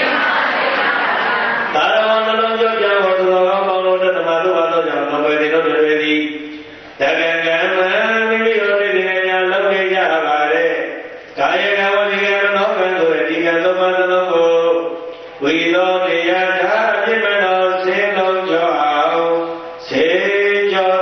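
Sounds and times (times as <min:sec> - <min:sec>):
monk chanting into a microphone: 0:01.7 - 0:21.0.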